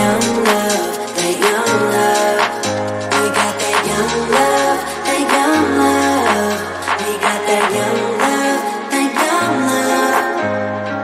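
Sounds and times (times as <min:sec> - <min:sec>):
pop r and b music with deep bass: 0:00.0 - 0:11.0.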